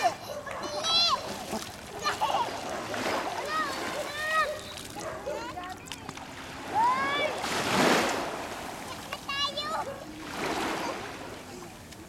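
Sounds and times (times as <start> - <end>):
children calling and squealing: 0.0 - 7.6, 8.8 - 11.2
water splashing: 0.0 - 12.0.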